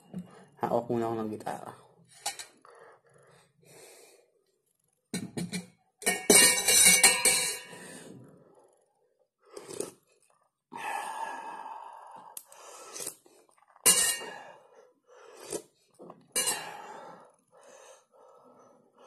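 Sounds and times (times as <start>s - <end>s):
breathing: 0.2s - 0.6s, 1.8s - 4.4s, 7.7s - 8.9s, 10.8s - 13.5s, 14.2s - 16.0s, 16.6s - 19.0s
slurping coffee off a spoon: 9.5s - 10.4s, 12.5s - 13.8s.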